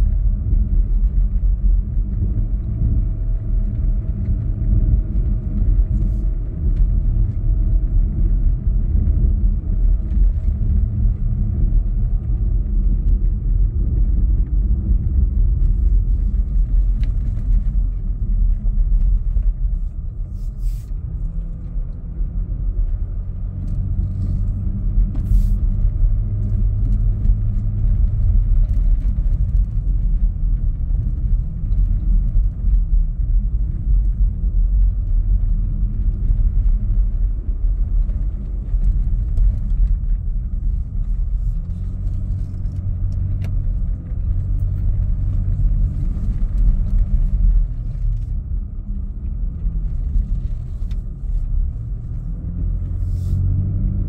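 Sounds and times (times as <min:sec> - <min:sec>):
vehicle engine and tyre rumble: 0:00.0 - 0:54.0.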